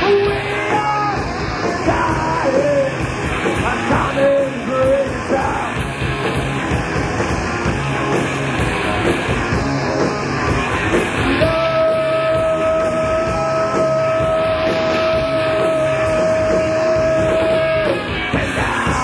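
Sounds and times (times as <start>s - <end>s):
loud rock band playing: 0.0s - 19.0s.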